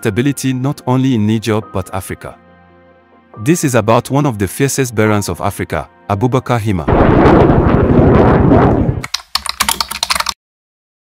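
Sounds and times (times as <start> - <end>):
keyboard typing clicks: 9.0 - 10.4.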